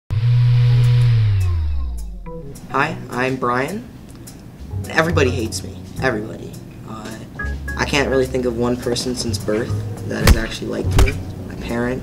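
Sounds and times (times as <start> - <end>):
low hum sliding down in pitch: 0.1 - 2.3.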